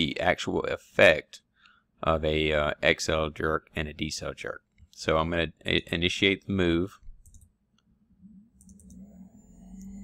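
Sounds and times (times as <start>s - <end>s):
low background hum: 0.0s - 10.0s
computer mouse clicks: 7.2s - 7.9s, 8.6s - 10.0s.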